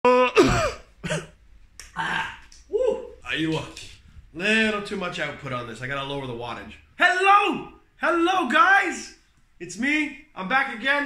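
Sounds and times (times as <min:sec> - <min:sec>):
man coughing: 0:00.1 - 0:01.4.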